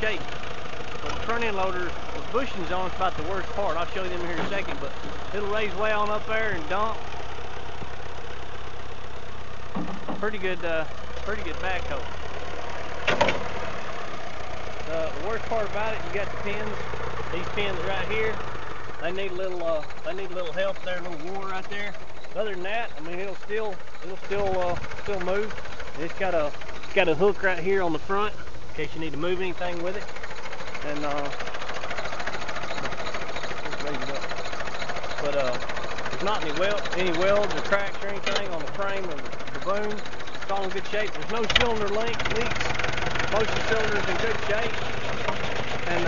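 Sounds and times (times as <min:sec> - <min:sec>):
tractor engine idling: 0:00.0 - 0:46.0
short clatter: 0:09.7 - 0:12.0, 0:13.0 - 0:13.6, 0:29.8 - 0:46.0.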